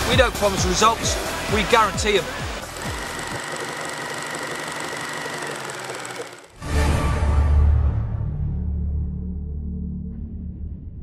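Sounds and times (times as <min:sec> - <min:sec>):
fast mechanical rattle: 0:01.4 - 0:06.6.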